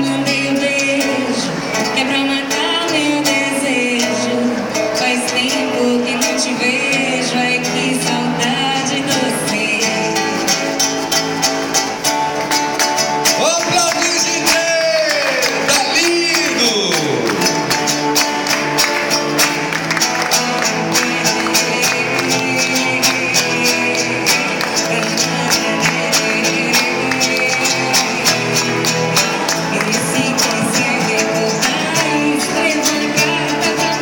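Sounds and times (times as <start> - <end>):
woman singing: 0.0 - 10.9, 20.4 - 34.0
acoustic guitars strumming: 0.0 - 34.0.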